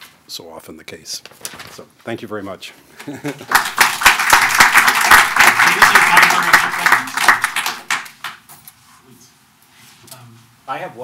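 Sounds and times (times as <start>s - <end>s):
audience applauding: 3.4s - 8.4s.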